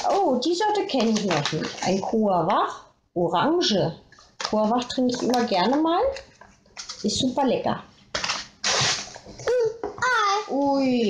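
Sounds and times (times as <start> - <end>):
packaging rustling: 0.0 - 2.1, 8.1 - 9.3.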